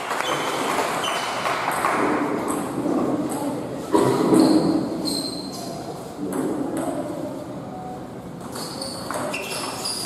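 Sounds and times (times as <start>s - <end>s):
table tennis ball hit and bouncing: 0.0s - 4.8s.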